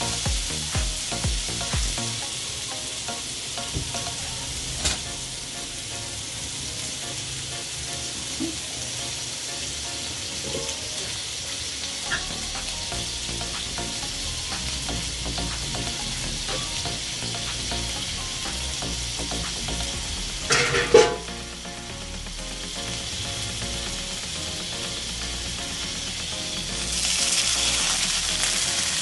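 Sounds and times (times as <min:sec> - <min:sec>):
meat sizzling in a pan: 0:00.0 - 0:29.0.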